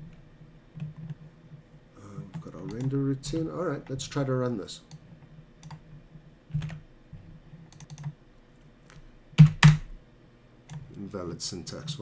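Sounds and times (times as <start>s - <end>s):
computer keyboard typing: 2.3s - 3.5s, 7.7s - 8.2s.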